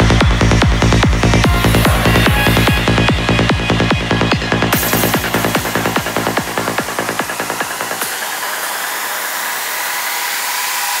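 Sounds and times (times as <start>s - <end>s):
kick drum and rolling bassline: 0.0s - 9.8s
hissing white-noise synth wash: 0.0s - 11.0s.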